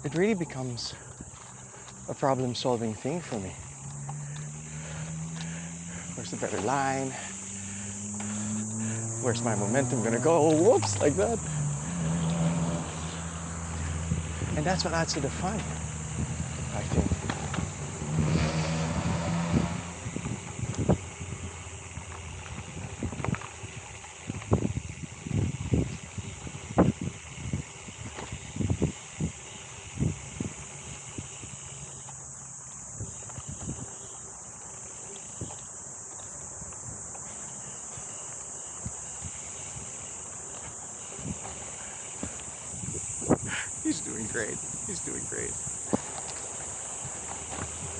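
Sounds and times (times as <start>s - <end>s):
bike rolling over dirt: 0.0s - 47.9s
high-pitched insect drone: 0.0s - 47.9s
bike knocks and rattles: 13.8s - 17.8s.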